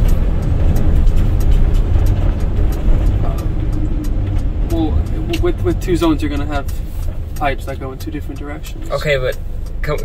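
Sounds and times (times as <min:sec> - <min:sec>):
road and engine rumble in van: 0:00.0 - 0:10.0.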